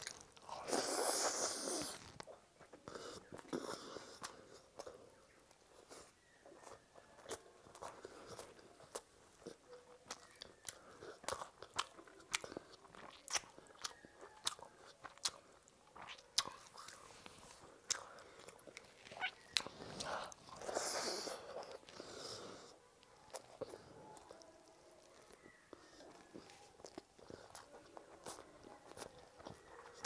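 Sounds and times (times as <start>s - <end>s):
chewing with wet mouth clicks: 0.0s - 30.0s.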